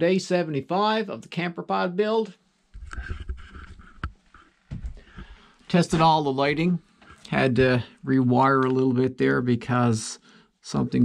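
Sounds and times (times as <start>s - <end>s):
camera handling thumps: 2.8s - 5.0s.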